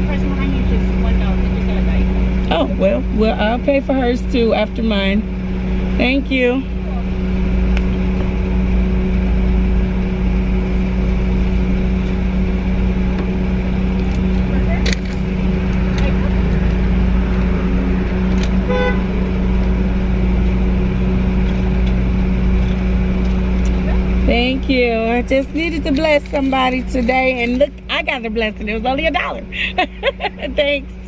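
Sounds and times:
car engine idling: 0.0 - 31.0.

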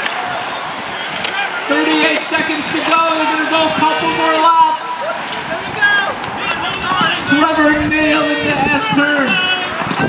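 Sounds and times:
rc car motor whine: 0.0 - 8.4
steady background noise: 0.0 - 10.0.

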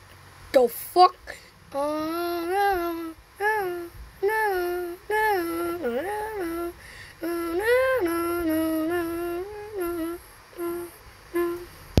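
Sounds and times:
person humming a tune: 1.7 - 11.8.

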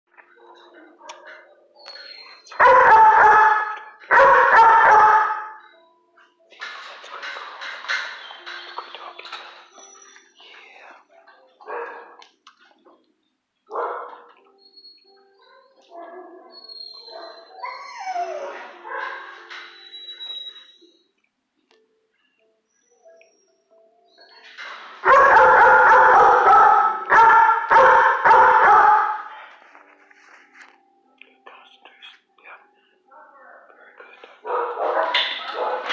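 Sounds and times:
dog whining: 14.5 - 21.0.

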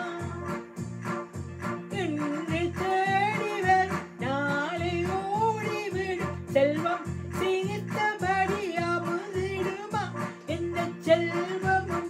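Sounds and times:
woman singing: 0.0 - 0.6, 1.9 - 12.0
electronic keyboard accompaniment: 0.0 - 12.0.

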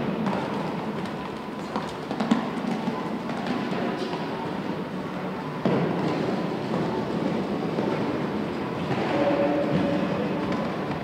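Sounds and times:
indoor hall ambience: 0.0 - 11.0.

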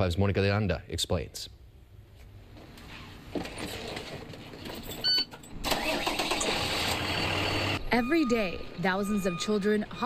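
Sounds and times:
bus engine running: 5.6 - 7.9.

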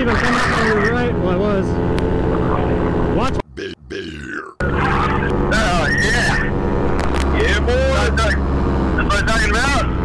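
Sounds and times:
paramotor engine running: 0.0 - 3.4, 4.6 - 10.0
man grunting: 3.5 - 4.6.

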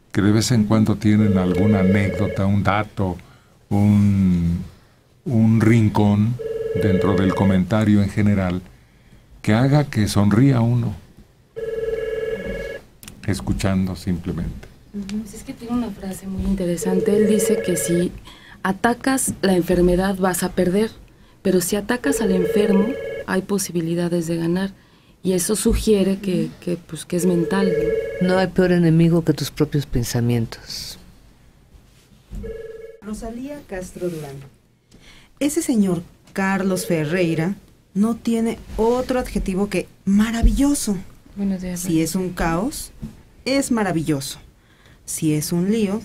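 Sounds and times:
electronic telephone ringing: 1.2 - 2.5, 6.4 - 7.6, 11.6 - 12.8, 16.8 - 18.1, 22.0 - 23.3, 27.2 - 28.4, 32.4 - 33.1.

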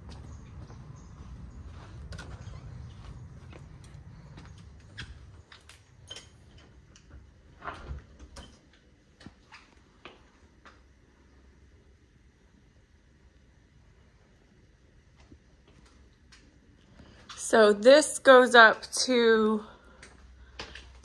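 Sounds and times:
footsteps: 0.0 - 8.1.

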